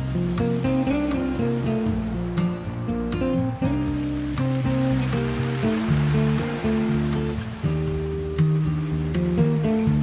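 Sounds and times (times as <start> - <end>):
classical guitar playing: 0.0 - 10.0
ocean waves on a beach: 0.0 - 10.0.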